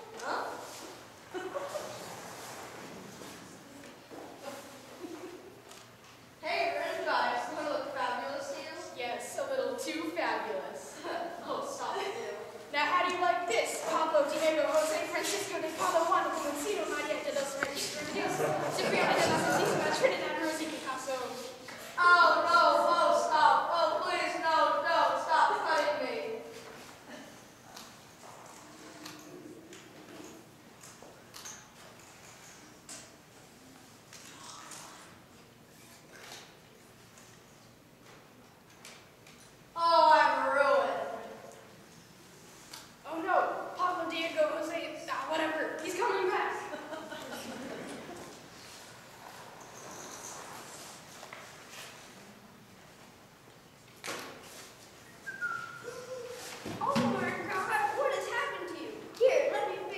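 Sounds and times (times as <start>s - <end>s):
person speaking: 6.4s - 26.5s
person whistling: 55.0s - 56.3s.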